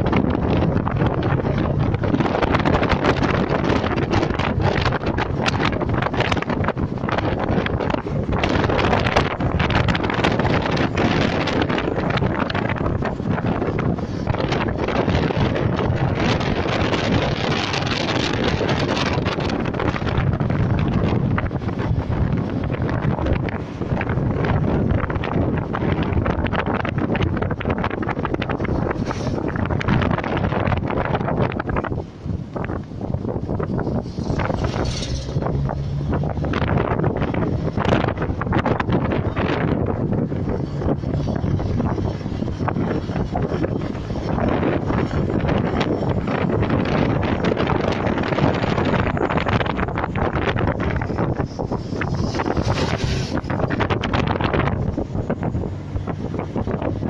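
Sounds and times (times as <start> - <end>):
bus passing with low hum: 0.0 - 57.0
car road and engine noise: 0.0 - 57.0
wind buffeting microphone: 0.0 - 57.0.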